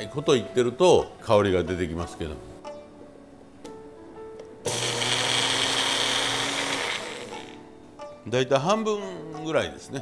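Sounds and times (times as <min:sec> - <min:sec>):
blender motor grinding seeds: 0:04.7 - 0:07.6.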